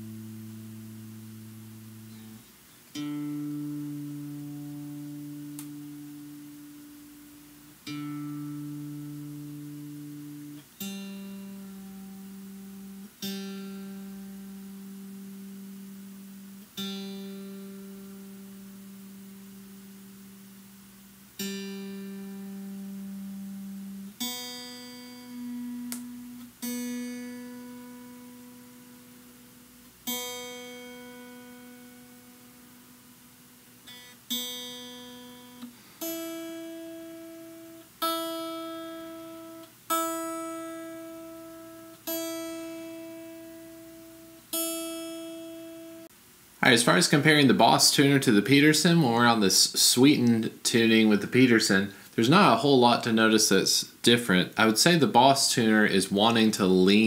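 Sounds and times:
electric guitar strings plucked: 0.0s - 20.3s, 21.4s - 32.7s, 33.9s - 46.1s.

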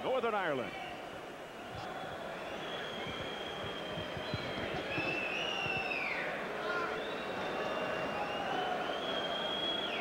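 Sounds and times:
indoor crowd hubbub: 0.0s - 10.0s.

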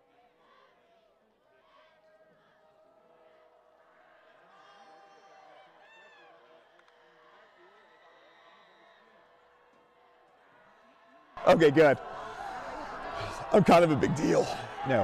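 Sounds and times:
calls from the stands: 1.6s - 15.0s
distant crowd voices: 10.7s - 15.0s.

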